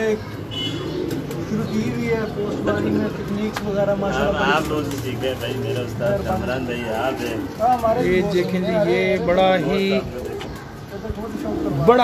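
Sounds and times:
pigeons cooing: 0:00.0 - 0:12.0
man's voice: 0:01.5 - 0:10.3.

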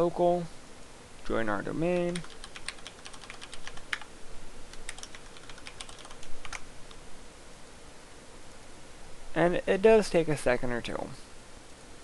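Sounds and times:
computer keyboard typing: 0:01.9 - 0:04.1, 0:04.7 - 0:06.6.

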